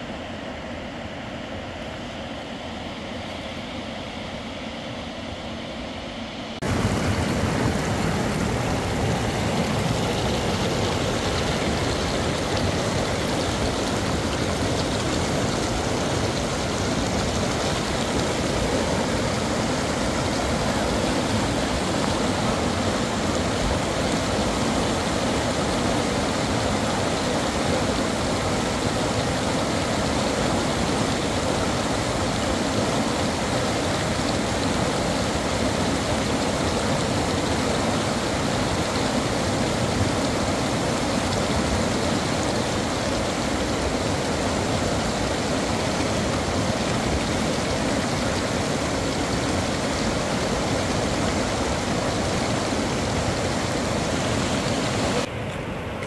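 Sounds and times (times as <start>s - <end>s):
river rushing over rocks: 6.6s - 56.0s.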